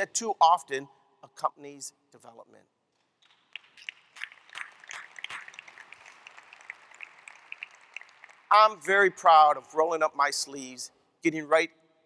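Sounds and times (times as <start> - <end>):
faint scattered applause: 3.6 - 9.0.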